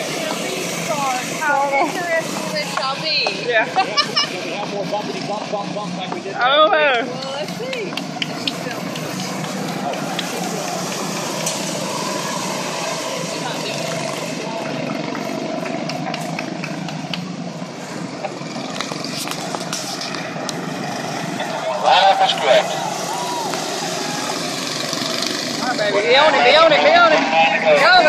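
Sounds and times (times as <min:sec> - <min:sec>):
indistinct voices: 0:00.0 - 0:28.0
small race car engines droning: 0:00.0 - 0:28.0.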